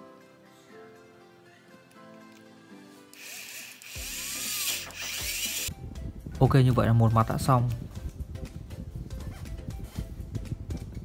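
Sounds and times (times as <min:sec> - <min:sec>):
background music: 0:00.0 - 0:11.0
drill driving a screw: 0:03.2 - 0:05.7.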